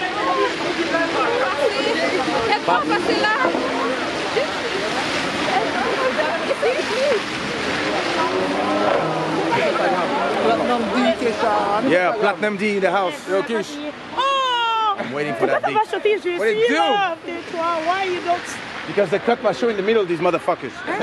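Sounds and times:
people talking and laughing: 0:00.0 - 0:21.0
street noise: 0:00.0 - 0:21.0.

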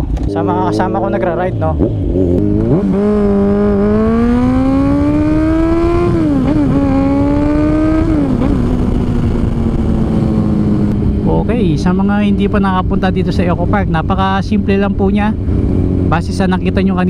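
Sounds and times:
motorcycle engine accelerating: 0:00.0 - 0:17.0
wind noise: 0:00.0 - 0:17.0.

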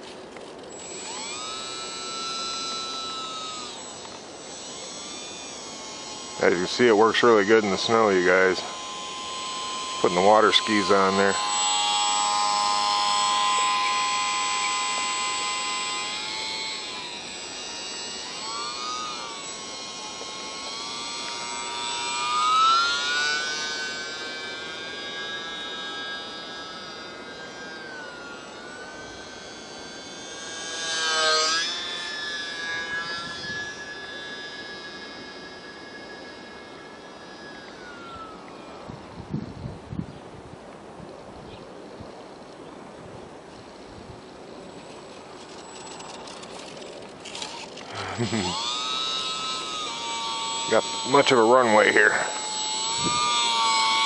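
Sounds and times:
model plane motor whining: 0:00.0 - 0:54.0.

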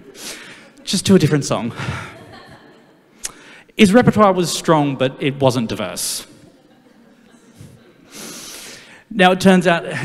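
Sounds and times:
man breathing in: 0:00.1 - 0:00.7, 0:03.2 - 0:03.8, 0:08.1 - 0:09.1.

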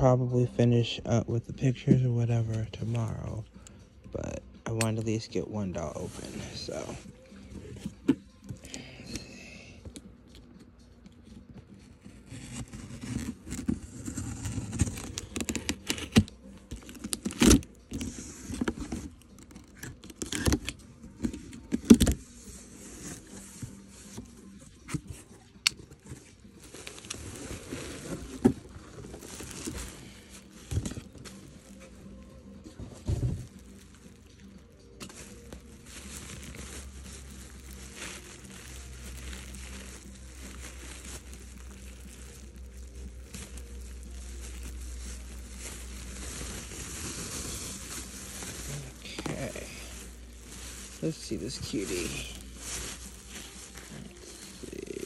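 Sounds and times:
plastic bag rustling: 0:05.2 - 0:09.4, 0:11.7 - 0:55.0
cardboard and tape snapping: 0:12.4 - 0:22.2.

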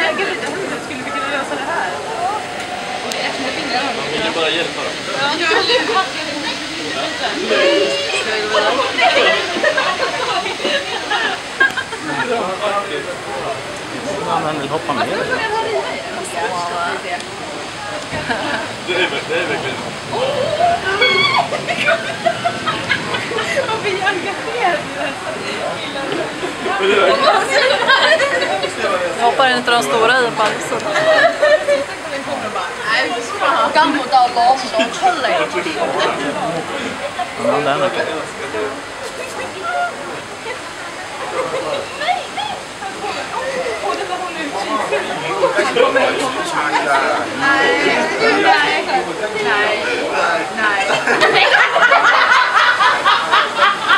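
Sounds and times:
indistinct voices: 0:00.0 - 0:53.9
running water rushing: 0:00.0 - 0:53.9.

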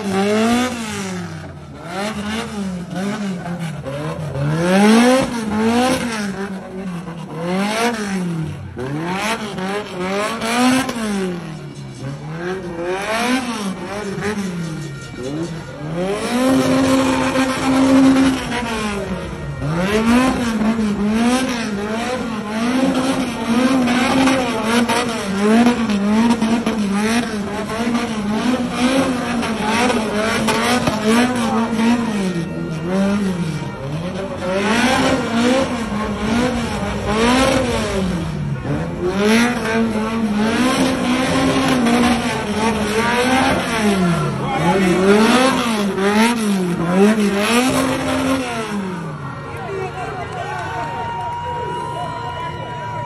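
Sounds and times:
car engine revving: 0:00.0 - 0:50.7.

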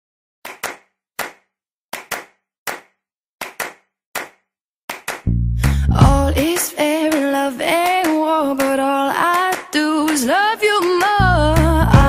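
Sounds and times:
rhythmic handclaps: 0:00.5 - 0:12.0.

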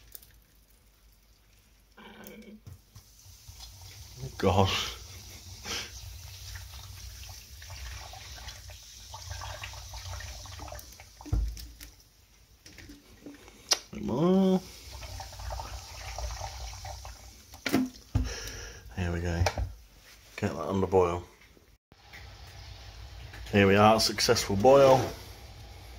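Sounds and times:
carbonated water pouring and fizzing: 0:00.0 - 0:18.8, 0:22.0 - 0:25.9
thump: 0:11.3 - 0:11.6
kettle rising hum: 0:22.0 - 0:25.9.

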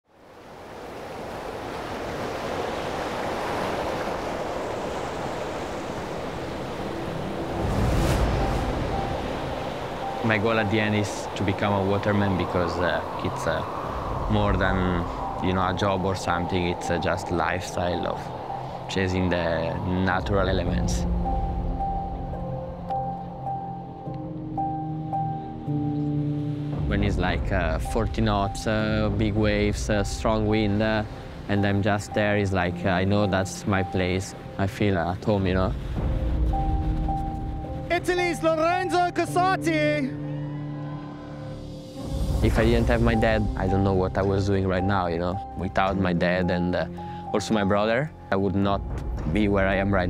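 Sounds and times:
ocean surf breaking on beach: 0:00.1 - 0:21.9, 0:26.4 - 0:40.1
background music held chords: 0:06.0 - 0:11.9, 0:13.3 - 0:50.0
low held tones: 0:06.3 - 0:26.5.

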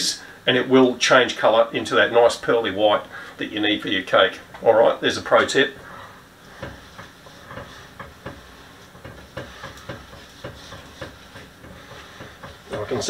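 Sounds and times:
faint steady hiss: 0:00.0 - 0:13.0
utensil scraping metal bowl: 0:05.4 - 0:13.0.

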